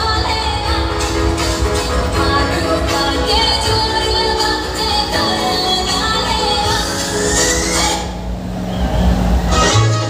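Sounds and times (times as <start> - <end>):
bass-heavy music on sound system: 0.0 - 10.0
rising sweep: 6.7 - 10.0.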